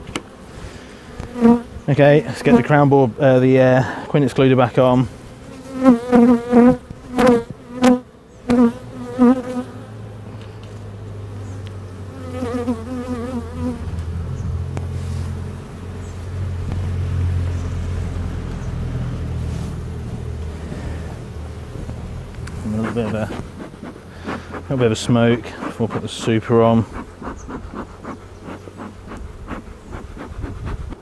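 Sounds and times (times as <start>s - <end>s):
low steady bee hum: 0.0s - 31.0s
bees whining past: 18.2s - 31.0s.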